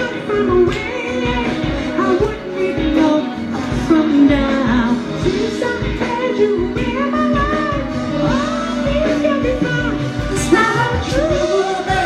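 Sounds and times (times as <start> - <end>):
backing music with steady beat: 0.0 - 12.0
man singing: 0.0 - 12.0.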